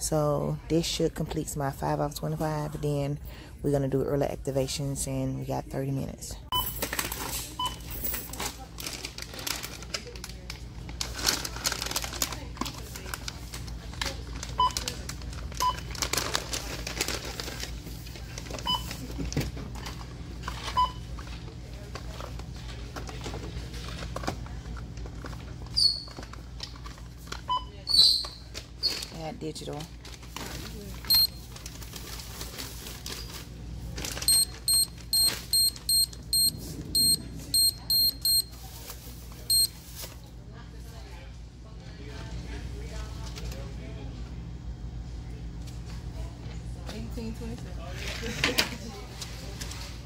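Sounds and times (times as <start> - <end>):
barcode scanner beeping: 31.1 - 31.4, 34.2 - 38.5, 39.5 - 39.7.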